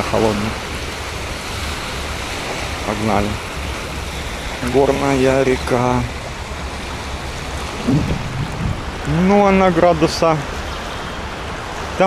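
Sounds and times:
small waves at shore: 0.0 - 12.0
stream rushing over pebbles: 0.0 - 12.0.

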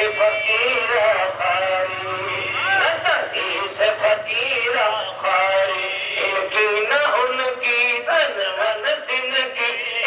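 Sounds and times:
man singing: 0.0 - 10.0.

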